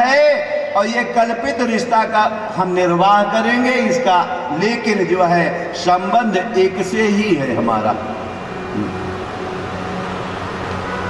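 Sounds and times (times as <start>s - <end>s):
steady background hum and hiss: 0.0s - 11.0s.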